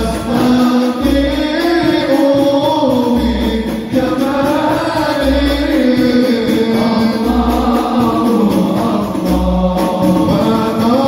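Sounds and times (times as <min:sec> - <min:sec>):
deep low beat: 0:00.0 - 0:11.0
men singing along: 0:00.0 - 0:11.0
person singing into microphone: 0:00.0 - 0:11.0.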